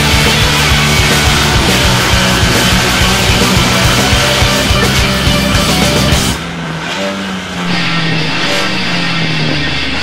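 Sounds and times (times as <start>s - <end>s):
bass: 0.0s - 6.4s, 7.7s - 10.0s
drums: 0.0s - 6.5s
heavy rock music: 0.0s - 6.5s, 7.6s - 10.0s.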